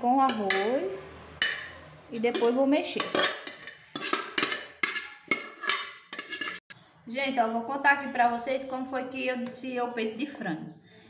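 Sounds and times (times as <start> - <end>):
metal spoon clanking on pot: 0.1 - 6.7.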